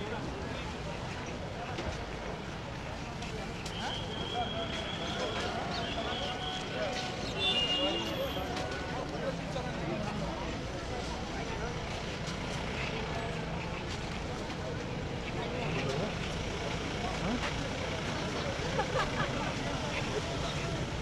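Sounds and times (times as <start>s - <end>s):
vehicles running: 0.0s - 21.0s.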